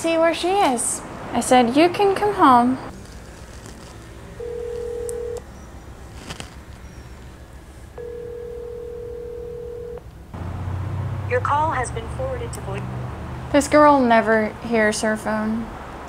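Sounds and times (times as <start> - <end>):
telephone ringback tone: 4.4 - 5.4, 8.0 - 10.0.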